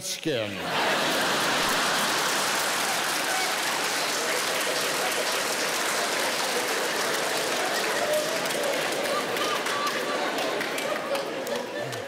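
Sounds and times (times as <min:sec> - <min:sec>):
audience laughing: 0:00.5 - 0:12.0
audience clapping: 0:00.6 - 0:12.0.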